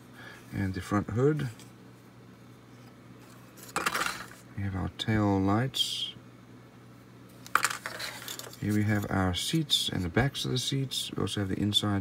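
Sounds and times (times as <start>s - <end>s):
plastic parts clattering on table: 3.6s - 4.4s, 7.5s - 8.6s.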